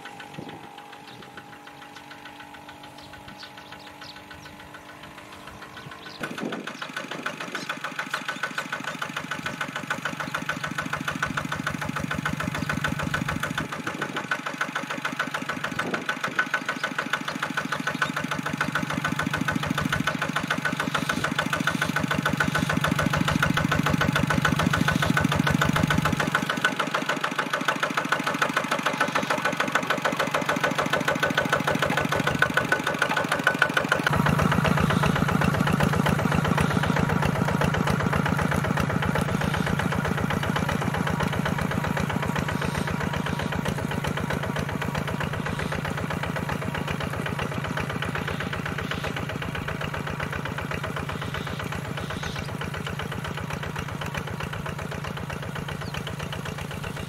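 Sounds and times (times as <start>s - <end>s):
diesel tractor engine chugging: 0.0s - 57.0s.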